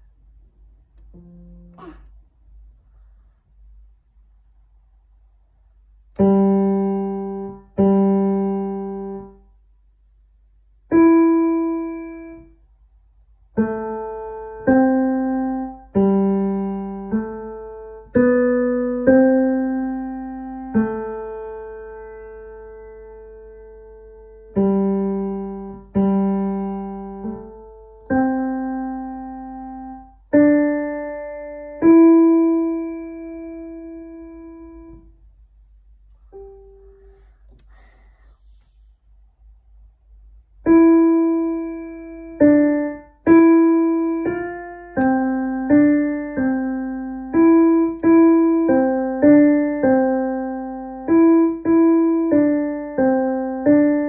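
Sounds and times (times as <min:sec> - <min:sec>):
digital piano melody: 0:01.0 - 0:01.9, 0:06.2 - 0:09.4, 0:10.9 - 0:12.6, 0:13.5 - 0:35.2, 0:40.6 - 0:54.0.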